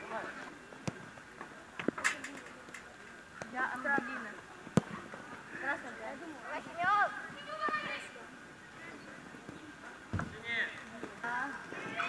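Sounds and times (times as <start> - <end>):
low thump: 10.1 - 10.4.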